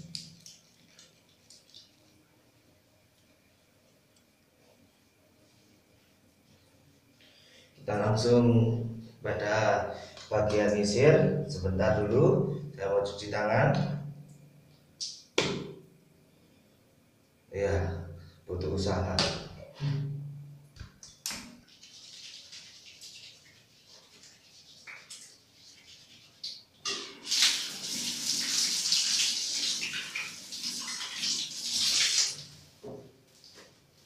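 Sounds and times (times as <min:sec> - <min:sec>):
tap water running over hands: 0:21.3 - 0:32.6.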